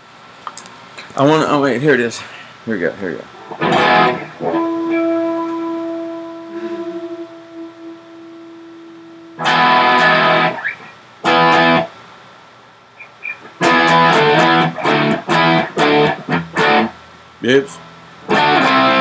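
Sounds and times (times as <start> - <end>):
electric guitar chords: 3.5 - 12.0, 13.2 - 17.1, 17.8 - 19.0.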